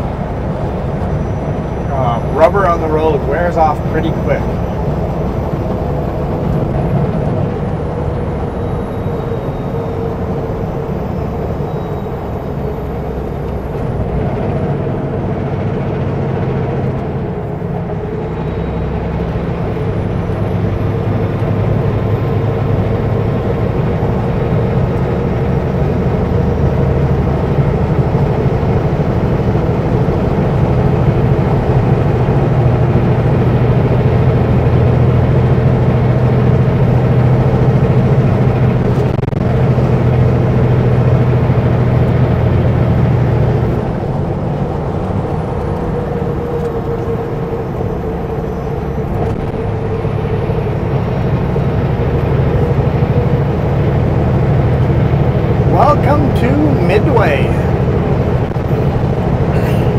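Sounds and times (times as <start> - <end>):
truck diesel engine droning: 0.0 - 59.9
faint high whine: 8.0 - 14.1.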